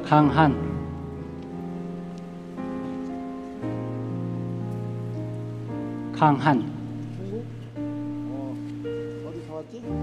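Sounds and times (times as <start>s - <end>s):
soft music with held chords: 0.0s - 10.0s.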